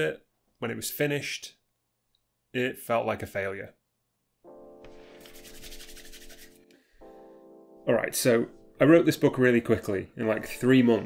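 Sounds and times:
soft held musical chord: 0:04.5 - 0:11.0
hands rubbing together: 0:04.9 - 0:06.7.

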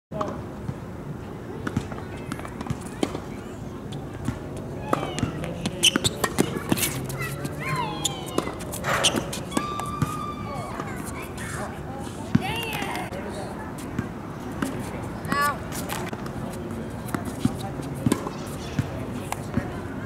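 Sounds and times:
faint voices and calls: 0:01.3 - 0:20.0
tennis balls struck and bouncing: 0:01.6 - 0:03.3, 0:04.2 - 0:11.2, 0:12.3 - 0:13.2, 0:14.0 - 0:19.8.

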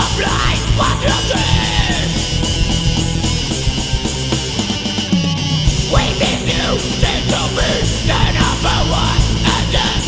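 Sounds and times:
punk band playing: 0:00.0 - 0:10.0.

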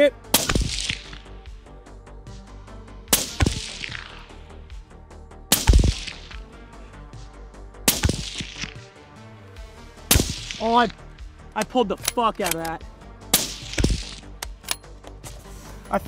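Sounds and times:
faint background music: 0:00.0 - 0:16.0
suppressed rifle shots: 0:00.3 - 0:01.4, 0:03.1 - 0:04.3, 0:05.5 - 0:06.4, 0:07.9 - 0:08.8, 0:10.1 - 0:10.6, 0:13.3 - 0:14.7.

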